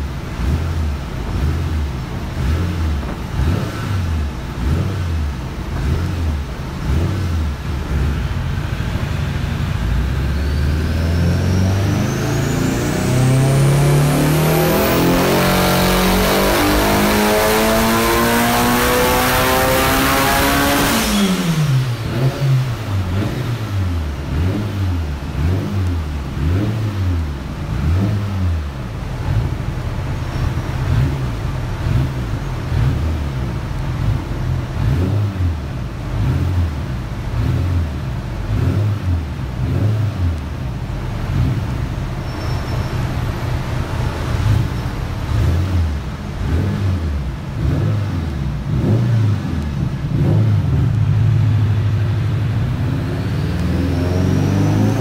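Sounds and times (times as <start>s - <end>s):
turbocharged engine revving: 0.0s - 55.0s.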